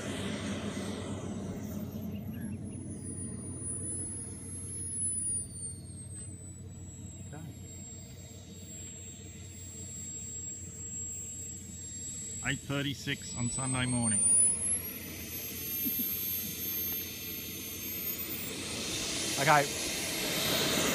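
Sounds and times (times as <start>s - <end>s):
model jet turbine whine: 0.0s - 20.9s.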